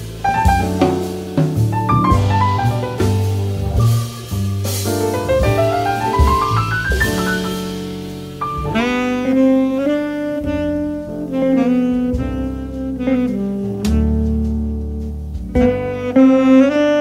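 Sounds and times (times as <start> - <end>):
double bass: 0.0 - 17.0
saxophone slow melody: 8.6 - 17.0.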